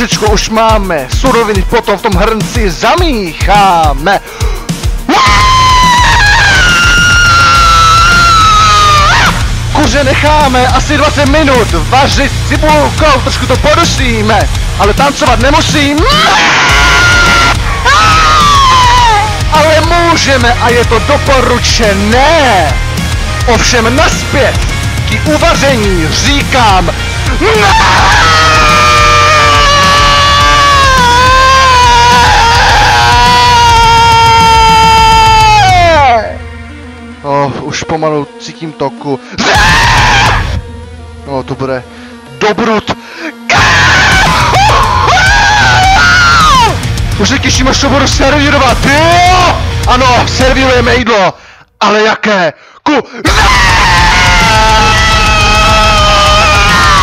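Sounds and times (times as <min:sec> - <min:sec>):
distorted metal band with drums: 0:00.0 - 0:36.3, 0:39.4 - 0:40.6, 0:43.5 - 0:51.0, 0:53.3 - 0:57.0.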